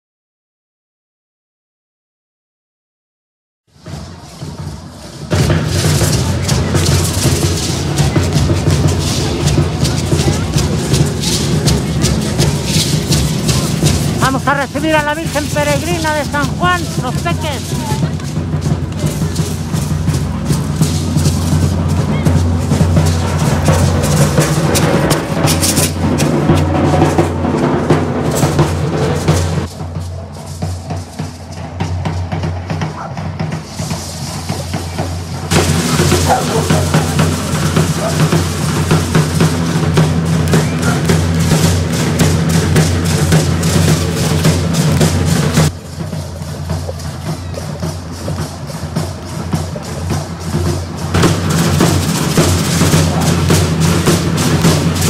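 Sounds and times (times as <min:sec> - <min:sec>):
drums beaten fast: 0:03.8 - 0:55.0.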